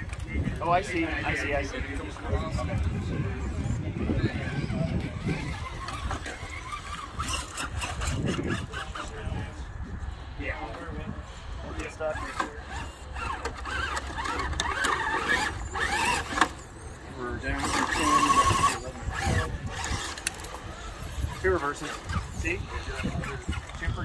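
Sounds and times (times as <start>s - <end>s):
people talking indistinctly: 0.0s - 24.0s.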